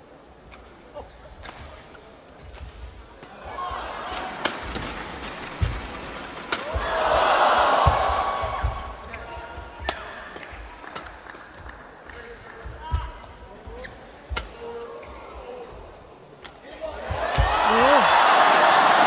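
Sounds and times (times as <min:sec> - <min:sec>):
crowd noise: 0:00.0 - 0:19.0
rackets striking shuttlecock: 0:04.1 - 0:06.9
shoes squeaking on court: 0:11.6 - 0:16.4.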